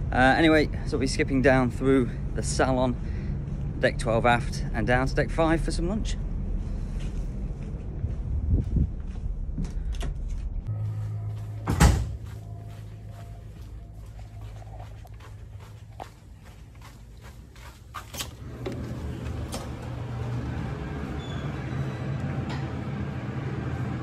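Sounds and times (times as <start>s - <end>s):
low interior hum: 0.0s - 24.0s
footsteps: 6.4s - 20.5s
wind rumbling on microphone: 7.2s - 10.6s
heavy door banging shut: 11.6s - 12.2s.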